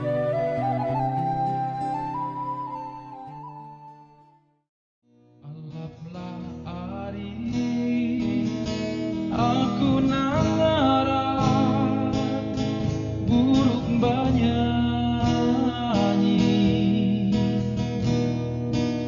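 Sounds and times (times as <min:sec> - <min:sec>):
gliding melody line: 0:00.0 - 0:04.4
acoustic guitar playing: 0:00.0 - 0:19.0.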